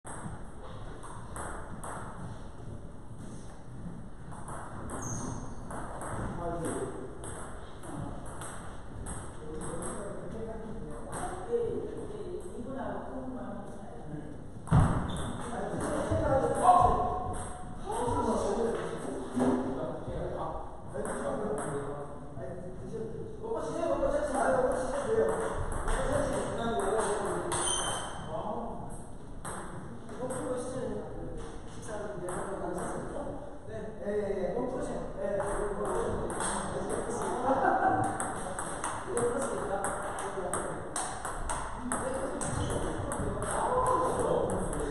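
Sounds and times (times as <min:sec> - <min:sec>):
table tennis ball bouncing: 0:00.1 - 0:02.4, 0:04.2 - 0:10.2, 0:14.6 - 0:18.1, 0:25.0 - 0:28.3, 0:29.4 - 0:30.6, 0:35.3 - 0:44.9.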